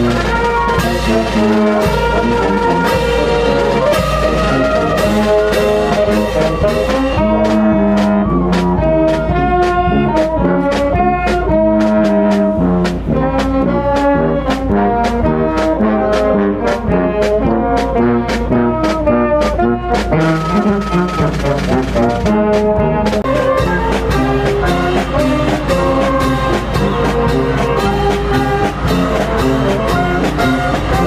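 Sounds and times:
bass and snare drums: 0:00.0 - 0:31.0
brass band playing: 0:00.0 - 0:31.0.

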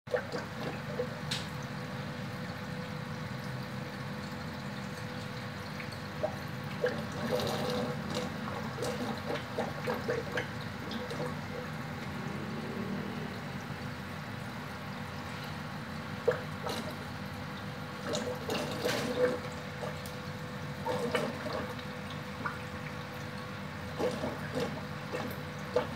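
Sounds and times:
aquarium air bubbles: 0:00.1 - 0:25.9
low steady hum: 0:04.3 - 0:25.9.

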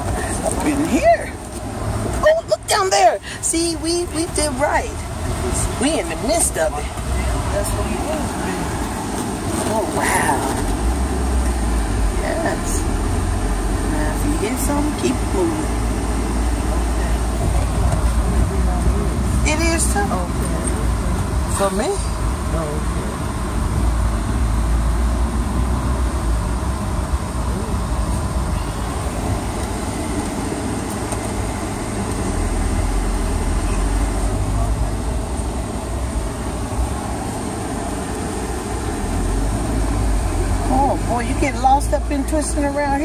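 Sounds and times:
road noise inside vehicle: 0:00.0 - 0:43.0
vehicle engine rumble: 0:00.0 - 0:43.0.

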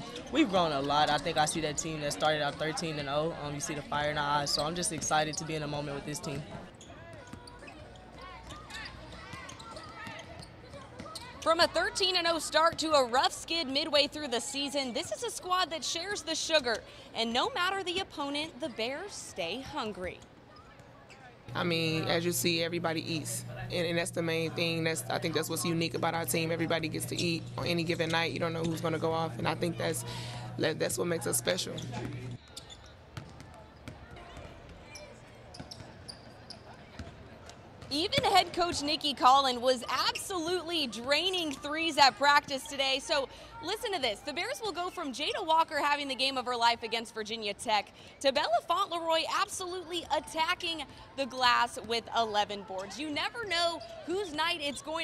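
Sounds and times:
basketballs bouncing on hardwood: 0:33.2 - 0:34.8.

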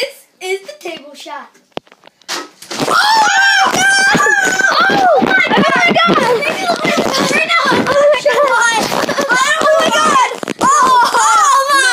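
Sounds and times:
children shouting excitedly: 0:02.9 - 0:11.9.

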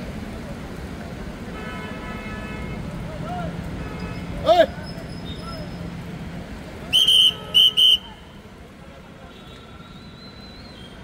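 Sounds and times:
whistle blasts: 0:06.9 - 0:08.2.

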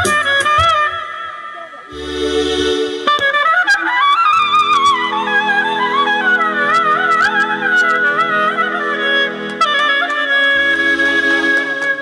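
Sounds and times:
clarinet melody: 0:00.0 - 0:12.0
held accompaniment notes: 0:00.0 - 0:12.0.

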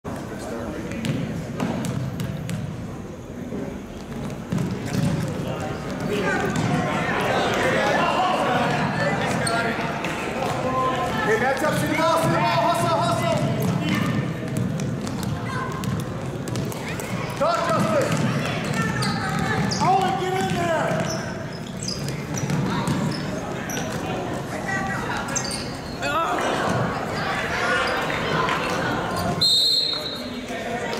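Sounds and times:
echoing chatter of spectators: 0:00.0 - 0:30.9
sneakers squeaking: 0:00.9 - 0:02.9, 0:04.0 - 0:07.8, 0:08.4 - 0:30.4
basketball bouncing on wood floor: 0:01.0 - 0:02.7, 0:04.1 - 0:06.8, 0:13.4 - 0:21.2, 0:22.0 - 0:23.2
basketball bouncing on hardwood: 0:04.2 - 0:05.3, 0:13.6 - 0:16.8, 0:22.0 - 0:23.1.

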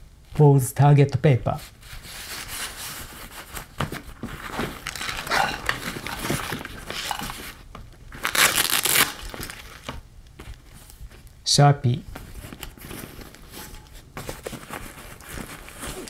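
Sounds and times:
nylon bag rustling and scraping: 0:01.7 - 0:10.0, 0:12.2 - 0:16.0.

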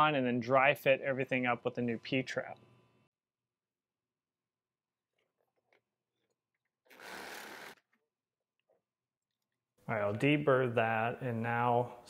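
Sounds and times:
reciprocating saw cutting pipe: 0:06.9 - 0:07.8.

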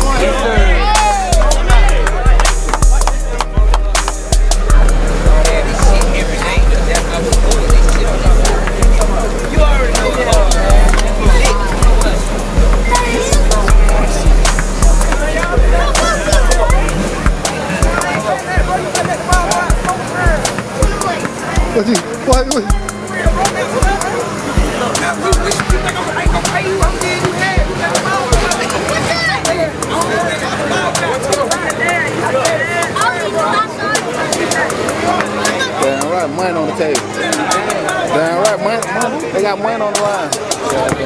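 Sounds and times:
crisp hi-hats: 0:00.0 - 0:30.3
booming bass beat: 0:00.0 - 0:33.0
vocals over hip-hop beat: 0:00.0 - 0:41.0.

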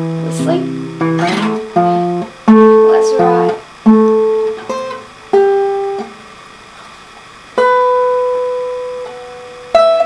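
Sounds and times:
acoustic guitar notes: 0:00.0 - 0:10.0.

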